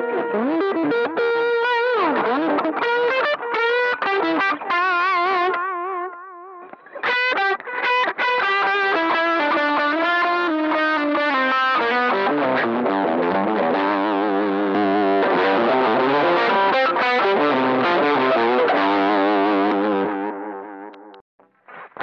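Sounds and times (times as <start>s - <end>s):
distorted electric guitar lead: 0.0s - 22.0s.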